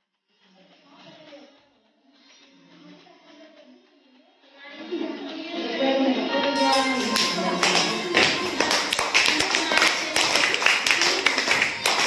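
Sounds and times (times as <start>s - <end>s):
voices in room: 0.2s - 12.0s
group clapping: 6.6s - 12.0s.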